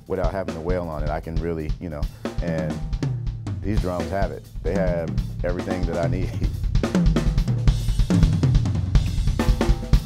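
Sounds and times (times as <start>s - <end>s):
drum kit playing groove: 0.0s - 10.0s.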